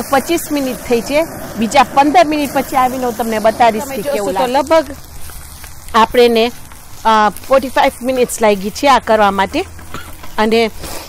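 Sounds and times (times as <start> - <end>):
person speaking: 0.0 - 5.0
chillies frying in oil: 0.0 - 11.0.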